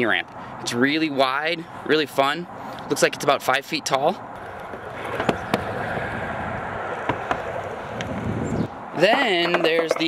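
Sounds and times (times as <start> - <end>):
skateboard wheels rolling on pavement: 4.3 - 10.0
skateboard clicks: 4.4 - 6.0.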